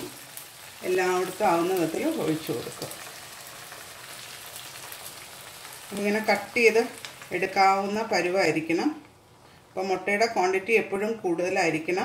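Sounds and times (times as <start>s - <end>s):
meat sizzling in a pan: 0.0s - 8.2s.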